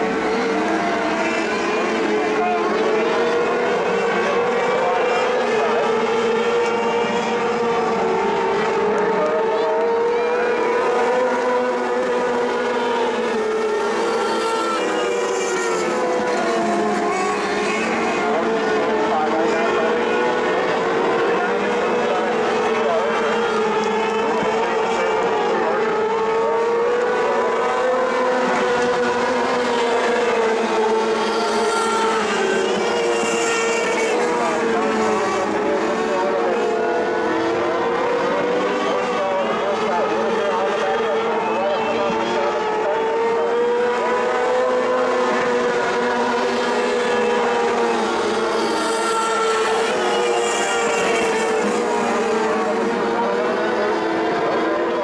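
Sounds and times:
race car engines running: 0.0s - 55.0s.

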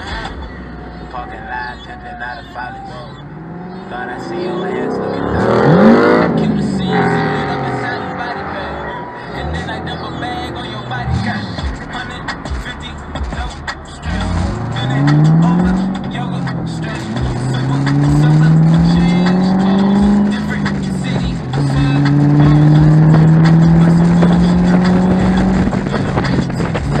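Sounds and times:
car engine accelerating hard: 0.0s - 27.0s
music from car stereo: 0.0s - 27.0s.

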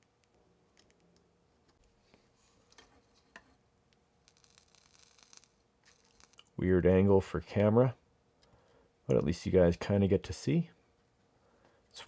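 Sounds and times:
solder crackling: 3.9s - 7.7s.

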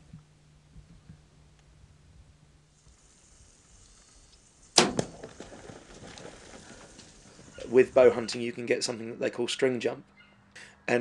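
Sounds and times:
animal scrambling through loose dirt: 3.8s - 8.5s
arrow striking animal: 4.8s - 5.4s.

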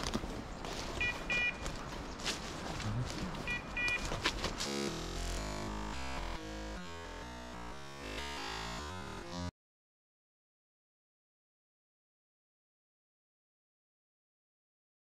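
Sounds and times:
footsteps crunching through undergrowth: 0.0s - 5.0s
short electronic beeps: 1.0s - 1.6s, 3.4s - 4.1s.

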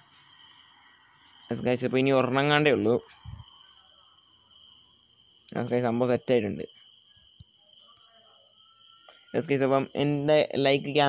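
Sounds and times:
man speaking: 1.5s - 3.1s, 5.5s - 6.7s, 9.4s - 11.0s.

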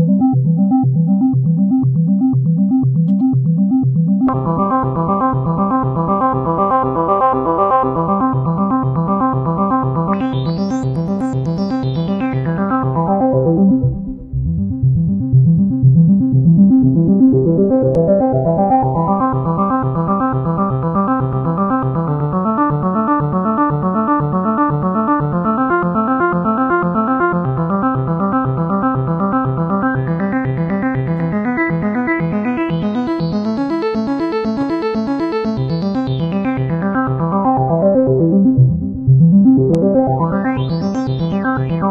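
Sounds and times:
synthesizer playing quick repeating notes: 37.3s - 41.9s.

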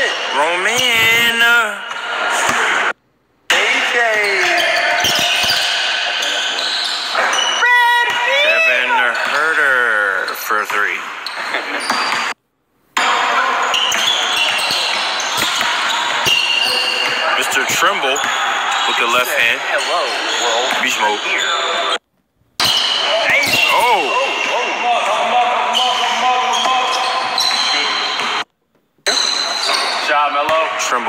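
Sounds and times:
players' voices echoing: 0.0s - 22.0s, 22.6s - 31.0s.

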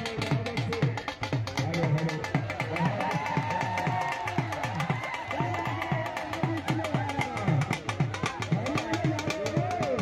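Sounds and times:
dhol beaten fast: 0.0s - 10.0s.

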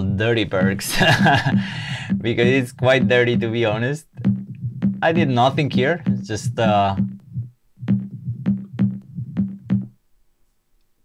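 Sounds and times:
electronic percussion hits: 4.2s - 9.9s
low bass tone: 4.2s - 9.9s.

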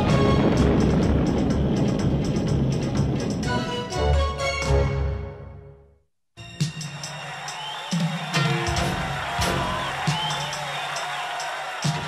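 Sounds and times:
cartoon soundtrack music: 0.0s - 1.9s, 2.8s - 10.6s
spaceship engine rumble: 0.0s - 3.8s.

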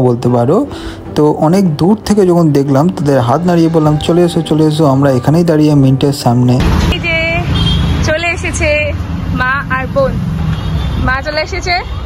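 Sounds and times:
road traffic rumble: 0.0s - 12.0s
people talking: 2.7s - 7.5s, 8.1s - 10.2s.

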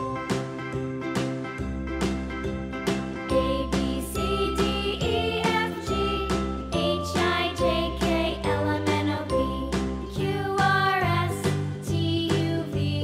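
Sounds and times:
cheerful children's music: 0.0s - 13.0s.

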